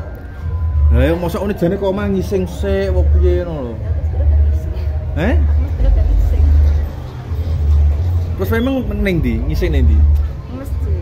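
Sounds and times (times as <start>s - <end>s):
faint voices: 0.0s - 11.0s
loud low rumble: 5.4s - 8.3s.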